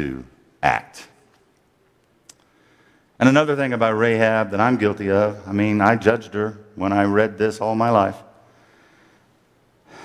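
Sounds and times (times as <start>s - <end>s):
man speaking: 0.0s - 1.3s, 3.2s - 8.4s.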